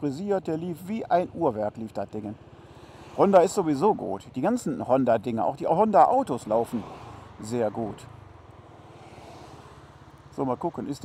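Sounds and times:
wind and road noise: 0.0s - 11.0s.

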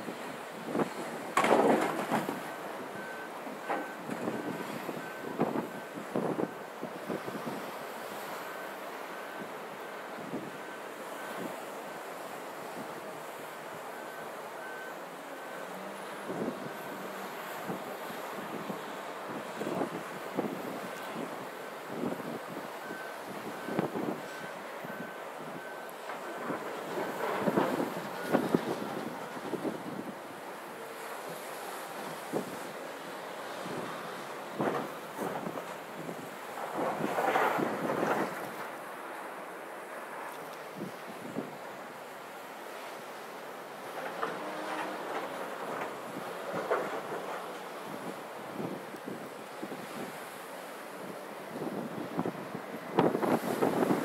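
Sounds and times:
reversing alarm beeping: 0.7s - 36.1s
wind buffeting microphone: 51.5s - 54.0s.

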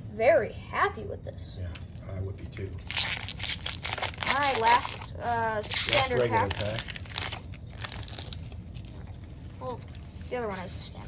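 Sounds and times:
foil wrapper crinkling: 2.8s - 10.9s
cards rustling: 2.8s - 11.0s.

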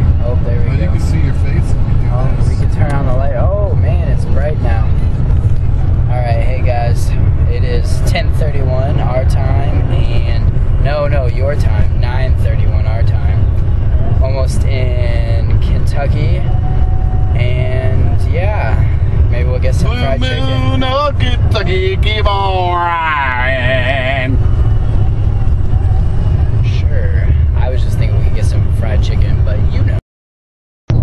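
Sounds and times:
road and engine rumble in car: 0.0s - 30.0s.

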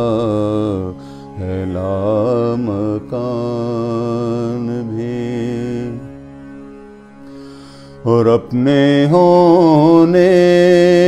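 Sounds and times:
man singing: 0.0s - 6.2s, 8.0s - 11.0s
steady drone: 0.0s - 11.0s.

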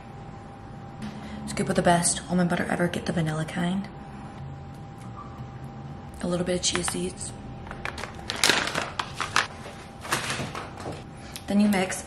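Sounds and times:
plastic pouch crinkling: 7.8s - 10.0s.

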